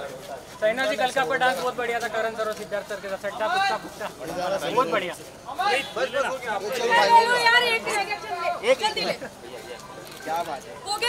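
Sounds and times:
crowd talking loudly: 0:00.0 - 0:11.0.

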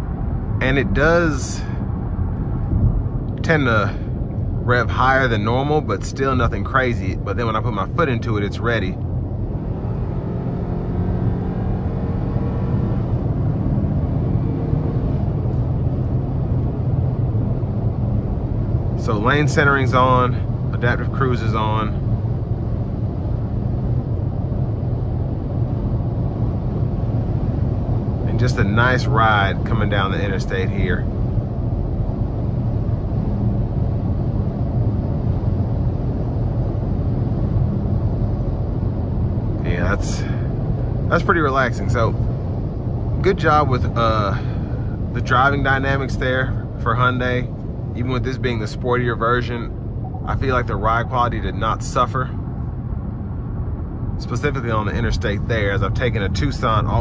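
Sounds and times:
car engine under heavy throttle: 0:00.0 - 0:57.0
low even hum: 0:00.0 - 0:57.0
road and tyre noise: 0:00.0 - 0:57.0.

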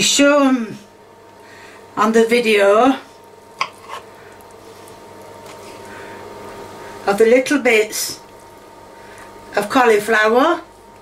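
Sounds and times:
knife cutting on wooden board: 0:03.6 - 0:04.0.

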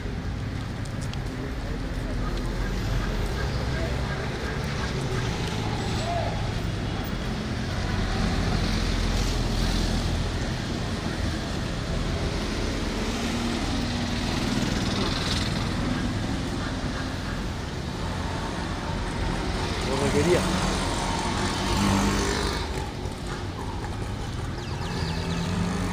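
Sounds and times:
street traffic passing: 0:00.0 - 0:25.9.

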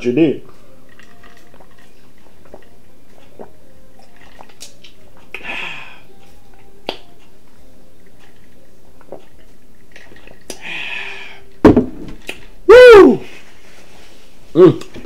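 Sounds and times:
mouth clicks: 0:09.0 - 0:10.7
breathy exhale: 0:10.6 - 0:11.5.

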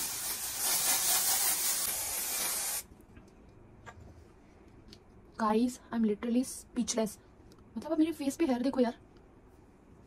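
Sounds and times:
spray can hissing: 0:00.0 - 0:02.8.

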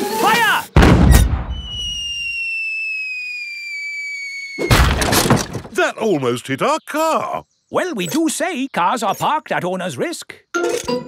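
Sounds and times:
cannon boom: 0:00.8 - 0:01.8, 0:04.7 - 0:05.7
falling whistle: 0:01.1 - 0:04.7
loud crash: 0:04.6 - 0:05.7.

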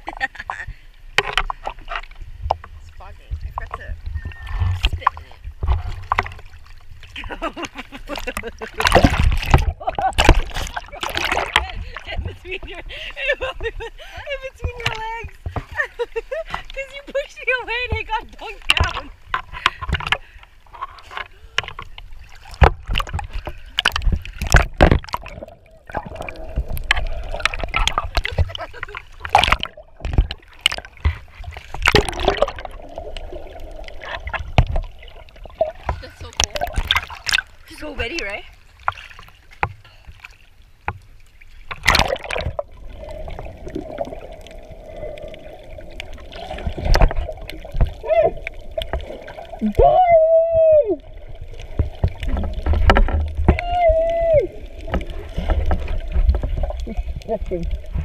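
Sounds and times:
sea water splashing: 0:00.0 - 0:58.0
underwater boat engine hum: 0:40.8 - 0:58.0.

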